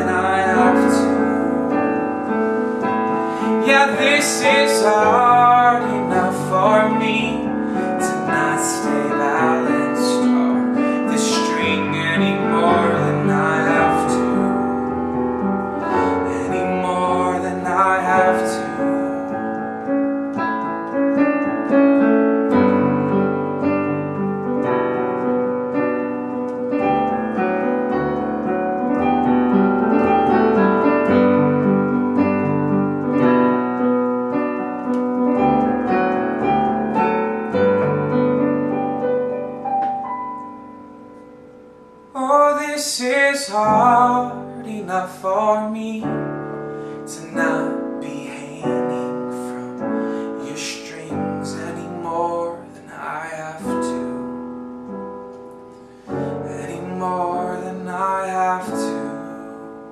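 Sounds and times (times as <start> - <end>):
slow piano chords: 0.0 - 59.9.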